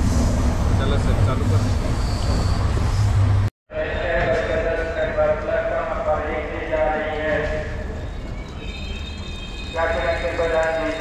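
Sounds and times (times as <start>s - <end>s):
train low rumble: 0.0s - 11.0s.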